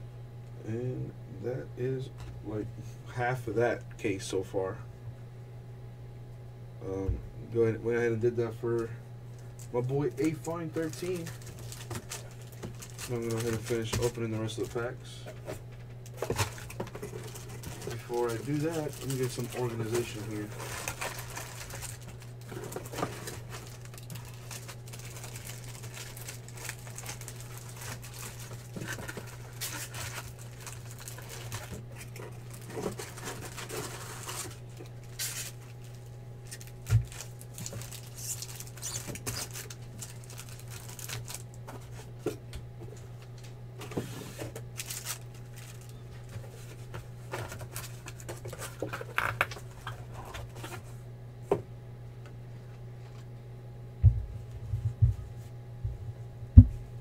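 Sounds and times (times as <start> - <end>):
steady low hum: 0.0 - 57.0
foil packs rustling and crinkling: 9.3 - 42.3, 43.2 - 50.9.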